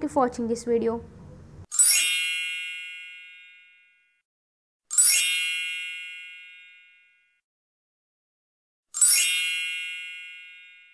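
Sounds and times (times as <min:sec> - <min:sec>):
bell-like chime: 0:01.7 - 0:04.2, 0:04.9 - 0:07.4, 0:09.0 - 0:10.9.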